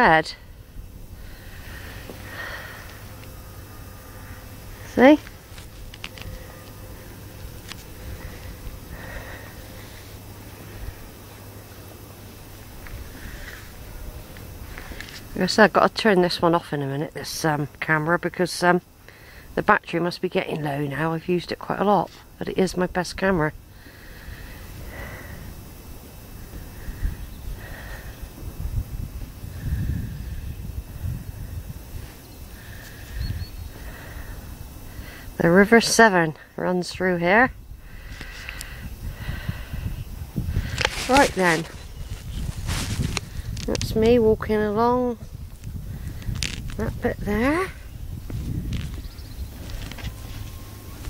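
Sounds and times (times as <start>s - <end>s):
faint breathy hisses: 0.4s - 11.6s, 12.9s - 15.3s, 19.0s - 19.6s, 23.7s - 35.4s, 37.8s - 43.6s
wind rumble on microphone: 24.2s - 34.8s, 37.4s - 51.0s.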